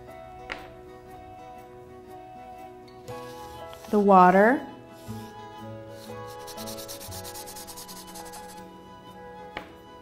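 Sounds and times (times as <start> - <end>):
chalk pastel scratching paper: 3.2 - 4.1, 4.9 - 8.6.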